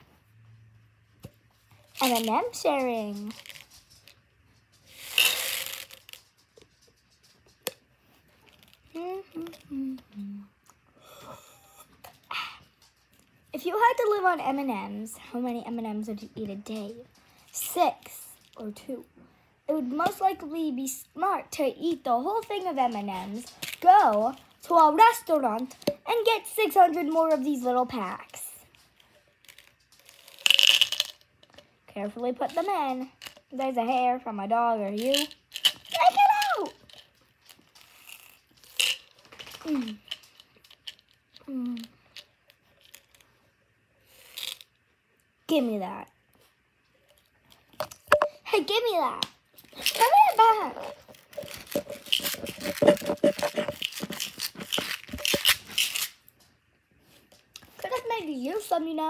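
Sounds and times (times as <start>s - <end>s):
candies rattling in plastic tube: 1.9s - 4.2s, 4.9s - 7.7s, 22.2s - 28.8s, 29.4s - 31.6s, 34.9s - 43.2s, 49.6s - 56.1s
plastic tube clicks and taps: 47.8s - 48.4s.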